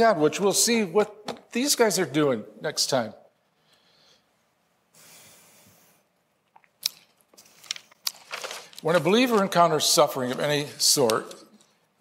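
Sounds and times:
man breathing in: 0:03.6 - 0:06.1.

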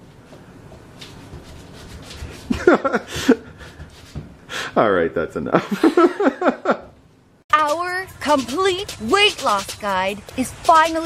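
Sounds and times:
wordless voice burst with sliding pitch: 0:07.6 - 0:11.0.

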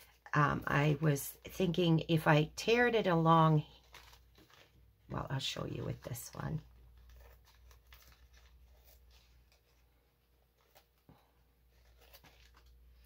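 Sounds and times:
paper filter rustling: 0:02.6 - 0:13.0.

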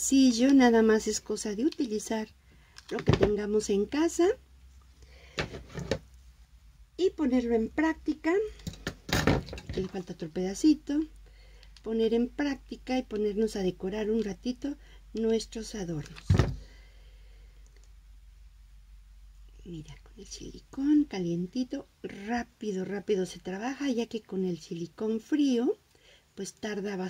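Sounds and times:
low steady hum: 0:00.0 - 0:27.0.

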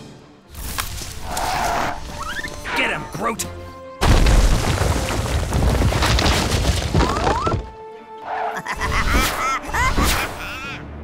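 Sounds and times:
dense crackling rumble: 0:04.1 - 0:07.1.

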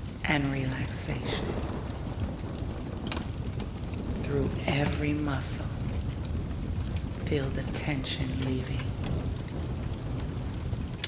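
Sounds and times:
rain hiss: 0:00.0 - 0:11.0
thunder rumble: 0:00.0 - 0:11.0.

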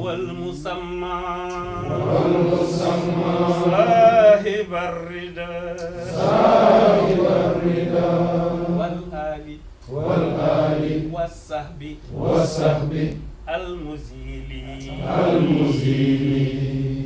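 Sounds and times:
man chanting melodic recitation: 0:00.0 - 0:06.2, 0:08.8 - 0:09.7, 0:11.0 - 0:12.2, 0:13.4 - 0:15.8
steady low hum: 0:00.0 - 0:17.0.

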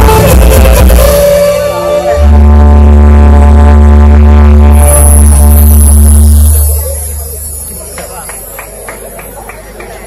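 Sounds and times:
violin and keyboards chord: 0:00.0 - 0:07.8
deep bass drone: 0:00.0 - 0:08.6.

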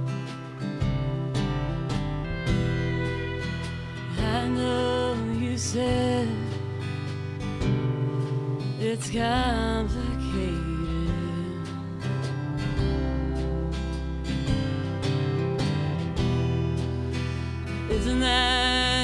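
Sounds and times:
drums: 0:00.0 - 0:19.0
electric bass: 0:00.0 - 0:19.0
strummed acoustic guitar: 0:00.0 - 0:19.0
woman singing lead vocal: 0:03.8 - 0:07.4, 0:08.6 - 0:12.8, 0:17.8 - 0:19.0.

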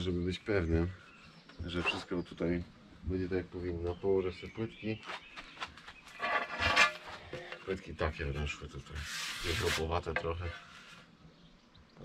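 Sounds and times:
tile scraping on concrete: 0:06.1 - 0:07.7, 0:08.9 - 0:11.0.

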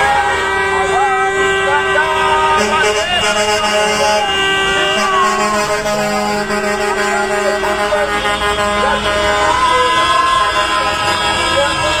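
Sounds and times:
vehicle horns honking: 0:00.0 - 0:12.0
voices shouting: 0:00.0 - 0:12.0
deep horn tone: 0:00.1 - 0:12.0.

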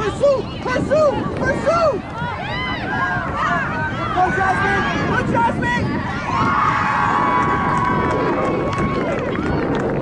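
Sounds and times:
spectators shouting: 0:00.0 - 0:09.2.

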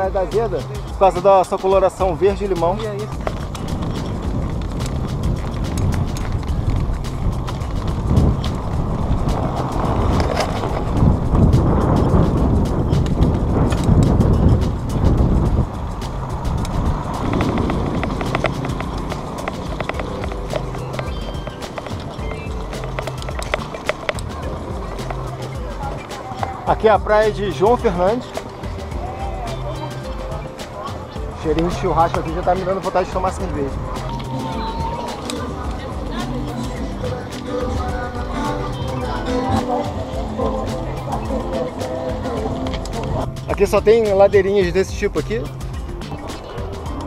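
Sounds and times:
background music with bass: 0:00.0 - 0:47.0
bike rattling over cobblestones: 0:00.0 - 0:47.0
wind on microphone: 0:00.0 - 0:47.0.

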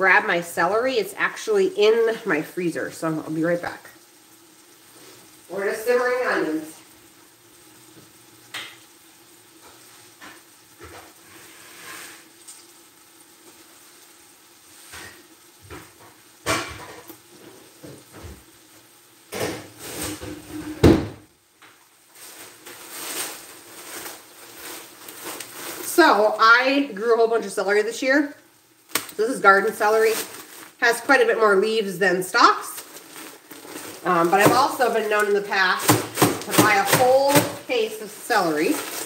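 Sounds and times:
onions simmering in pot: 0:00.0 - 0:39.0
freezer door knocks: 0:20.8 - 0:21.2
containers clattering: 0:32.7 - 0:39.0.

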